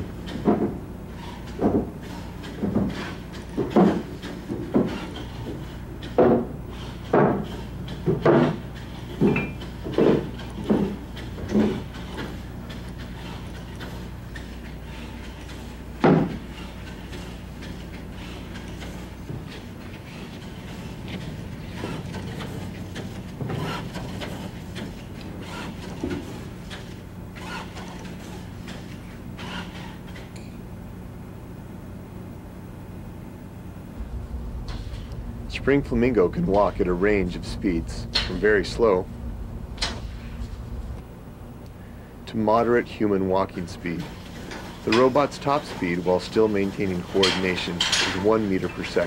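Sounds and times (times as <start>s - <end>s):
low electrical hum: 0.0s - 49.0s.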